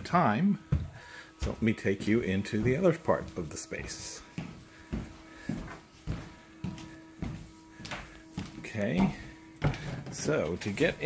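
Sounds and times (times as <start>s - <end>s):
footsteps on wooden floor: 0.6s - 11.0s.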